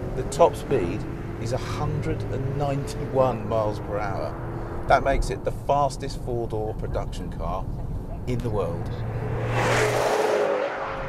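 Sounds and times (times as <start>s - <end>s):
car driving past at speed: 8.9s - 11.0s.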